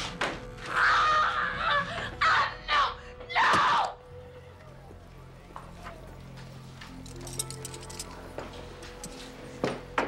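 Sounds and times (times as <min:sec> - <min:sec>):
woman screaming in rage: 0:00.7 - 0:04.0.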